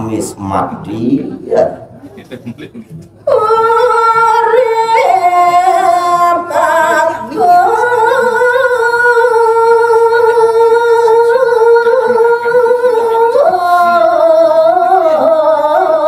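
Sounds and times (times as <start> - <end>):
woman singing into a microphone: 3.2 - 16.0.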